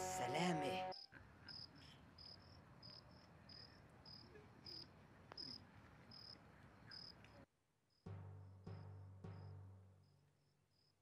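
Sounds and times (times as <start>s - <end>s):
cricket chirping: 0.9s - 7.2s.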